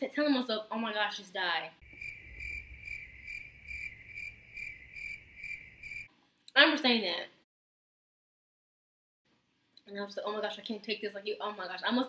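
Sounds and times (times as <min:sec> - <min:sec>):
crickets chirping: 0:01.8 - 0:06.1.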